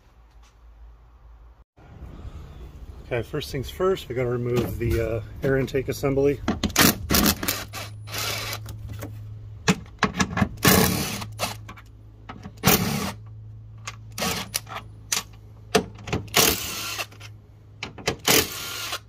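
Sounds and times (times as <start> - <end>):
cordless impact driver running: 6.8 - 8.6, 16.3 - 17.1, 18.2 - 19.0.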